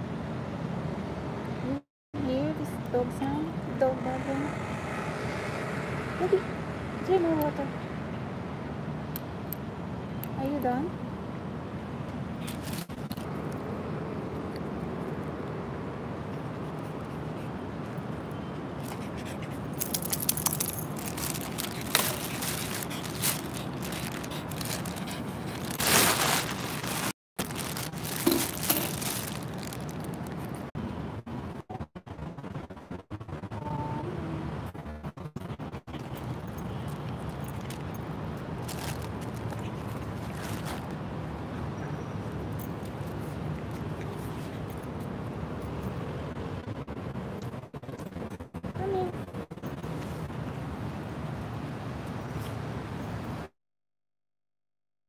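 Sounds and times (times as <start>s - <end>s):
outdoor background noise: 0.0s - 53.5s
phone handling scrapes and rustles: 12.4s - 13.3s, 19.7s - 30.5s.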